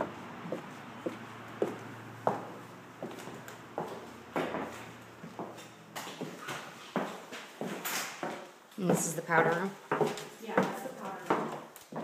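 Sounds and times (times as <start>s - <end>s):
footsteps on hardwood floor: 0.0s - 12.0s.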